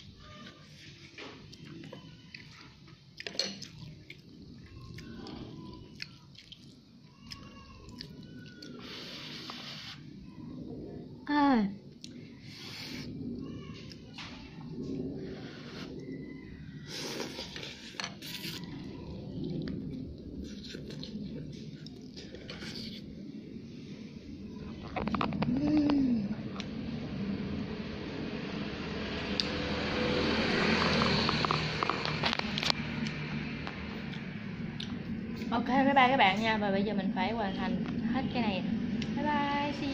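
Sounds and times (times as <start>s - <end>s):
slurping and chewing: 1.6s - 10.1s, 16.8s - 23.1s
person humming: 25.5s - 26.4s.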